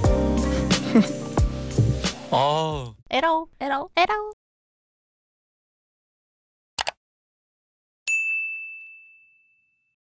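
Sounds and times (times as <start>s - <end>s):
bright notification bell ding: 8.1s - 9.9s.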